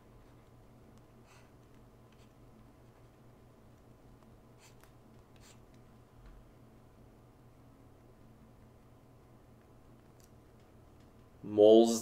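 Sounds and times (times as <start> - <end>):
low steady hum: 0.0 - 12.0
stylus scratching tablet screen: 2.1 - 2.4, 4.6 - 5.7.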